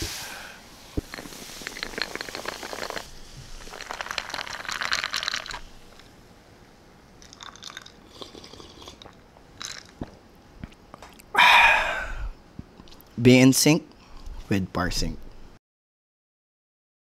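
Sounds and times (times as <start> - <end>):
soft drink bubbles fizzing: 1.0 - 6.1, 7.2 - 10.2.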